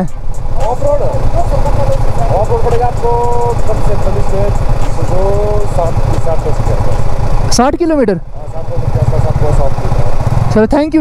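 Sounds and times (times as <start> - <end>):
vehicle engines idling: 0.0 - 11.0.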